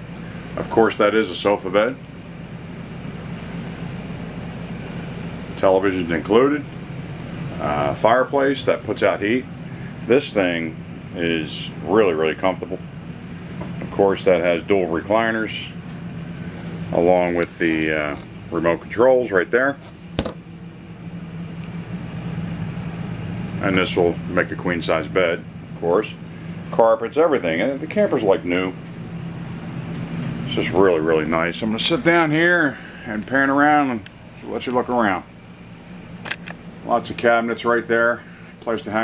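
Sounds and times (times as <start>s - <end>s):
low machine hum: 0.0s - 39.0s.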